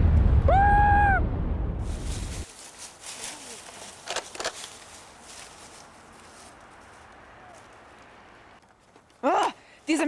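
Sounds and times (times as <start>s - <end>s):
footsteps in dry leaves: 1.8s - 10.0s.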